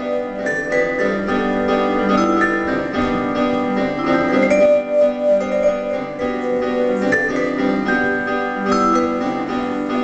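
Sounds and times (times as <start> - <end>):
electric keyboard accompaniment: 0.0 - 10.0
vibraphone played with mallets: 0.0 - 10.0.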